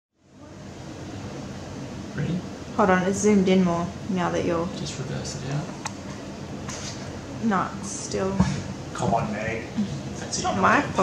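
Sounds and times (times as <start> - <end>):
room noise hiss: 0.2 - 11.0.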